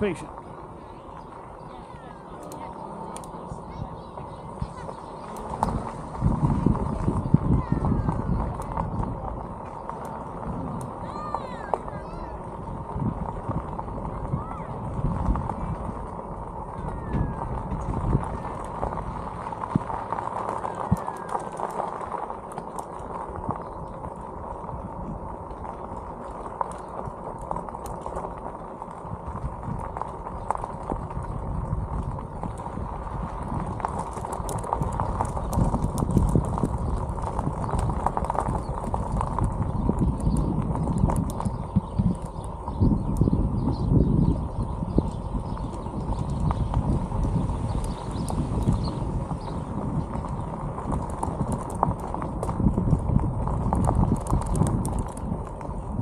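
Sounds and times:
bicycle tyres crunching on gravel: 0.0s - 56.0s
wind rumbling on microphone: 0.0s - 56.0s.

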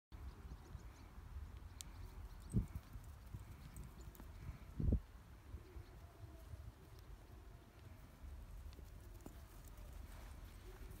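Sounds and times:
wind rumble on microphone: 2.1s - 6.0s
hooves thudding on turf: 8.5s - 11.0s.

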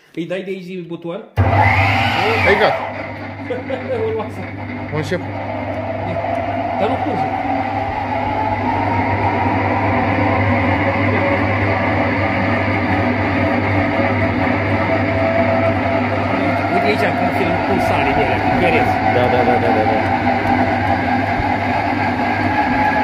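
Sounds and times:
honey extractor motor whine: 1.4s - 23.0s
low hum: 1.4s - 23.0s.

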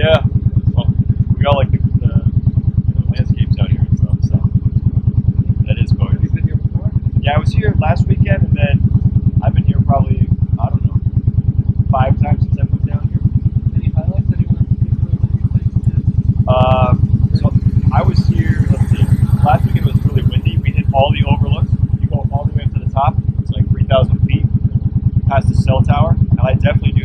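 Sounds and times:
motorcycle engine idling: 0.0s - 27.0s.

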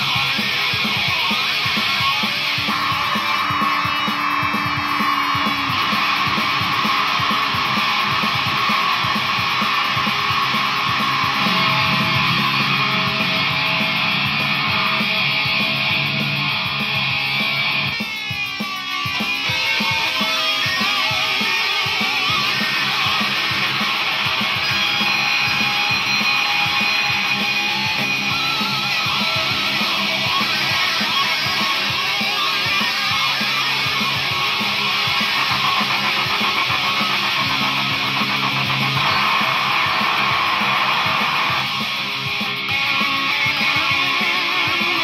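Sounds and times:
distorted electric guitar riff: 0.0s - 45.0s.

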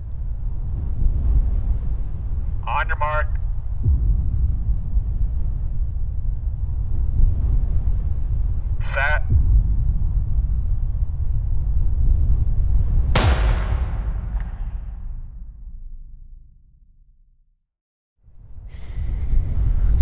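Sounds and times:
low rumble: 0.0s - 17.6s
starter's pistol shot: 13.2s - 15.3s.

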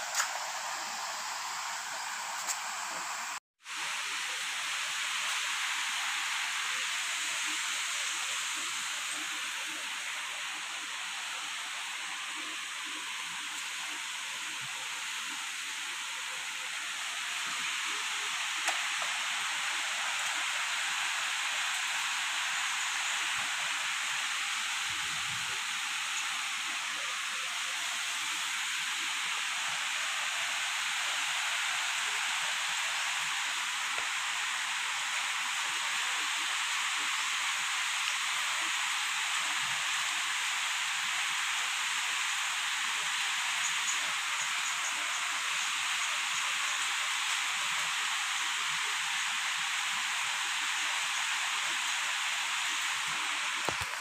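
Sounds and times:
high-pitched hiss: 0.0s - 54.0s.

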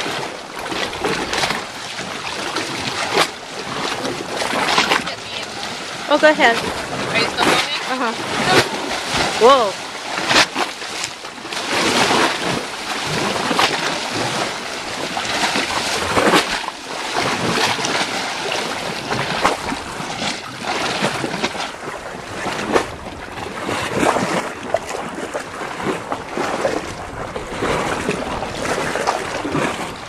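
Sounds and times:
water sloshing: 0.0s - 30.0s
waves splashing on rocks: 0.0s - 30.0s.

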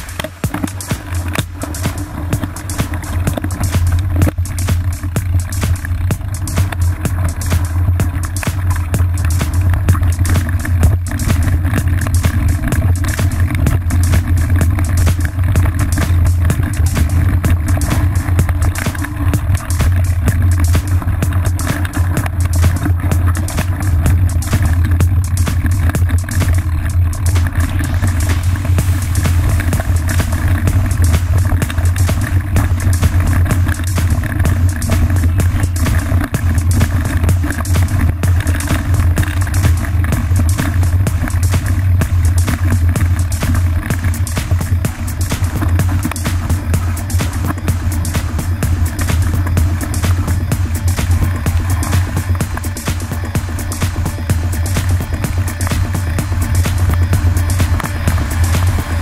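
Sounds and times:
background music: 0.0s - 59.0s
loud low bass line: 0.0s - 59.0s.

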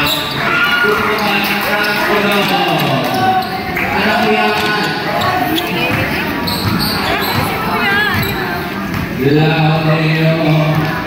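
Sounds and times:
basketball bouncing on court: 4.6s - 9.5s, 10.4s - 11.0s.

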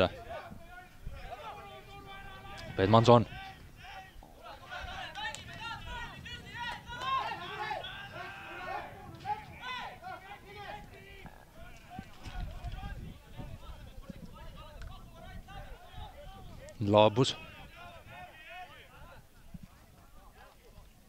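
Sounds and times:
players shouting at distance: 0.0s - 19.4s.

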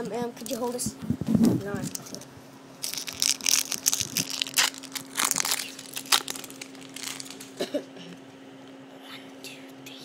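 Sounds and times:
foil wrapper crinkling: 2.8s - 7.6s.

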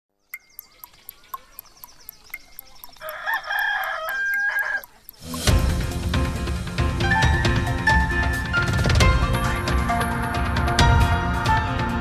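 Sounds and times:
clock ticking: 0.4s - 6.3s
rooster crowing: 2.9s - 5.0s
intro music: 5.1s - 12.0s.

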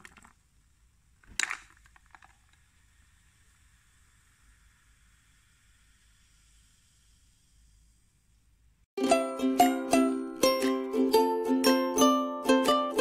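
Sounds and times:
faint room tone hiss: 0.0s - 13.0s.

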